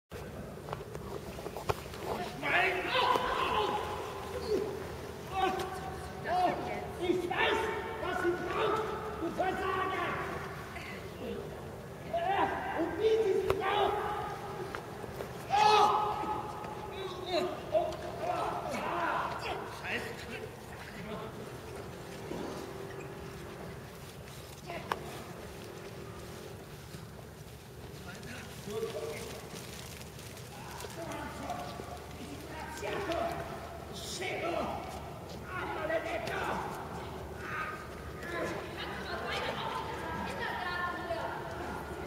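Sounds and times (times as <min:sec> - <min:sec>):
outdoor rumble and hiss: 0:00.1 - 0:42.0
people calling out and talking: 0:00.2 - 0:42.0.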